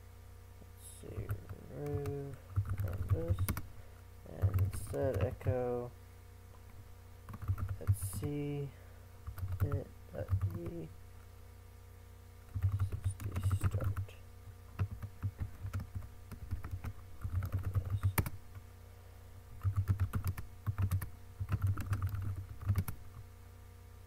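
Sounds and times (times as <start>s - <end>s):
typing on keyboard: 1.2s - 3.6s, 4.4s - 5.4s, 7.3s - 8.2s, 9.2s - 10.8s, 12.5s - 14.0s, 14.8s - 18.4s, 19.6s - 23.0s.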